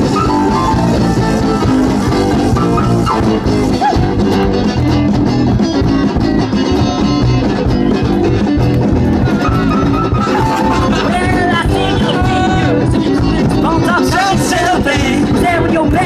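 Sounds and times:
drum kit beat: 0.0 - 16.0
electric guitar: 0.0 - 16.0.

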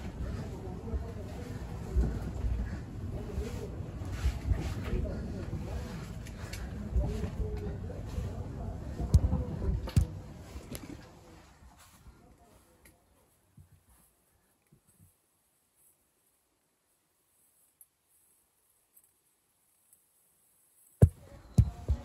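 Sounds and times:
faint voices: 0.0 - 14.6, 21.0 - 22.0.

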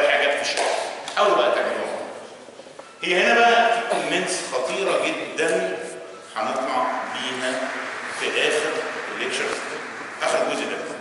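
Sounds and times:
man talking: 3.0 - 11.0.

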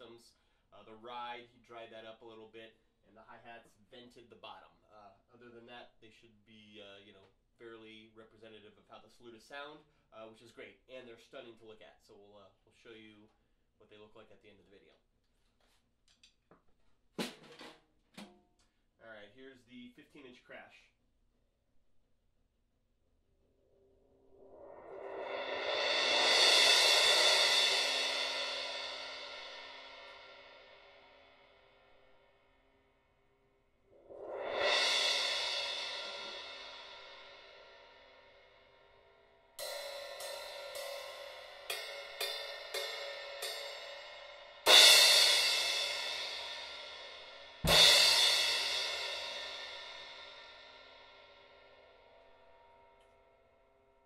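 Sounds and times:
crash cymbal mallet swell: 24.3 - 31.8, 34.0 - 53.9
stick strikes on cymbal: 24.4 - 32.2, 34.0 - 54.0
cymbal crashes ringing out: 24.5 - 31.6, 34.0 - 53.4.

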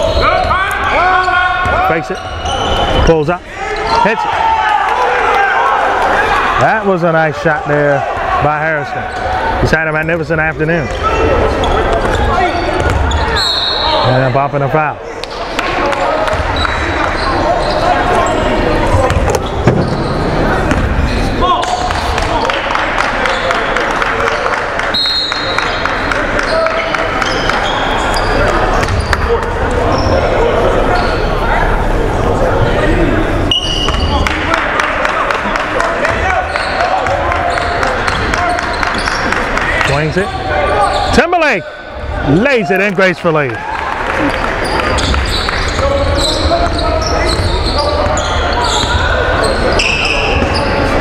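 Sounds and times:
voices in a gym: 0.0 - 51.0.

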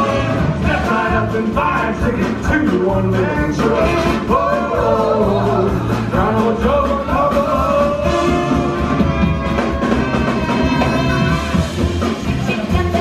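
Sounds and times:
saxophone melody: 0.0 - 0.7, 6.8 - 12.1
jazz band playing: 0.0 - 13.0.

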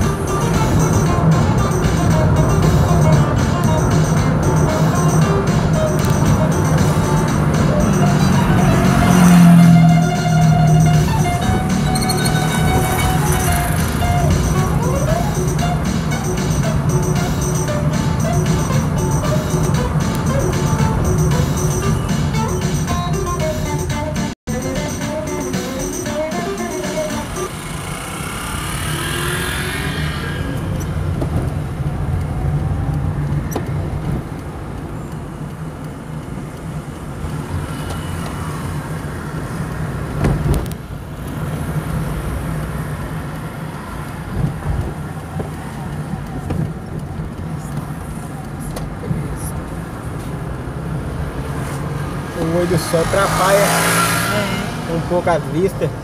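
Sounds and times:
background music: 0.0 - 27.6
car engine and tyres drone: 0.0 - 56.0
car bump: 40.1 - 40.8.

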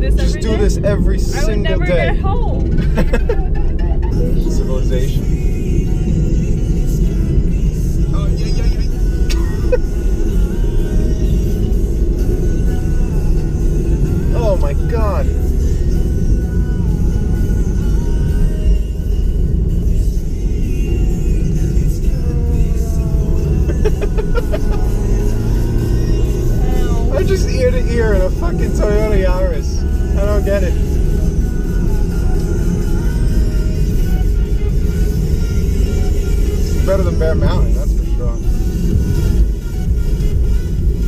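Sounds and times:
car engine and tyre rumble: 0.0 - 41.0.

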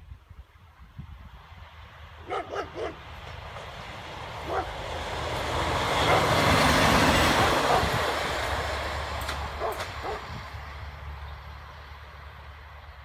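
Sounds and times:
diesel railcar passing: 0.6 - 13.0
wheels on rails: 2.8 - 12.5.

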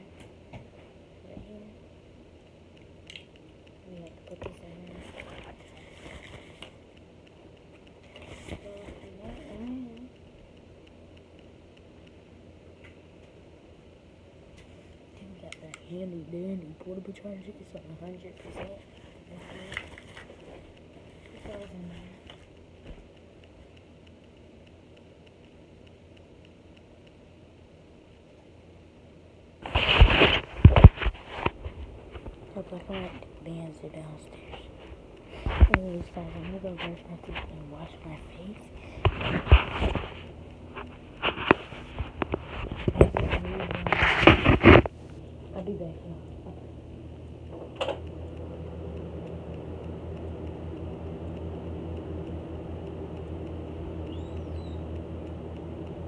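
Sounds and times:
faint room hum: 0.0 - 56.0.

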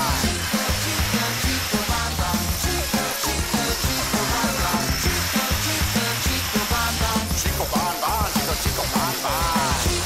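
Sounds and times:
upbeat background music: 0.0 - 10.0.

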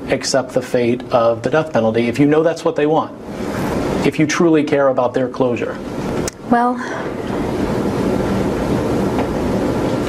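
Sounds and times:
steady rushing noise: 3.0 - 6.2.

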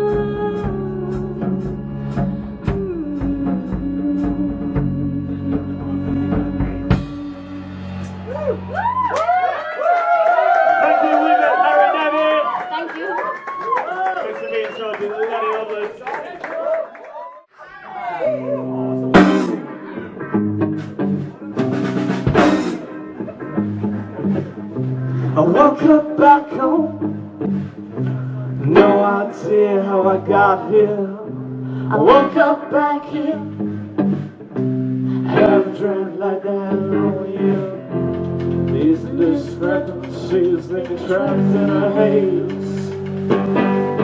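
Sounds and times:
person singing: 0.0 - 8.7, 25.2 - 27.2, 28.0 - 33.6, 34.9 - 38.1, 38.7 - 43.3
live rock band playing: 0.0 - 9.4, 18.3 - 44.0
electric guitar and bass: 0.0 - 9.5, 18.2 - 44.0
audience whooping and cheering: 7.9 - 19.0.

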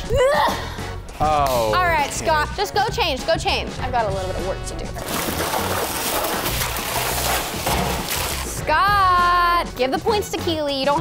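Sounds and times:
ice cubes clattering into water: 5.0 - 8.6.

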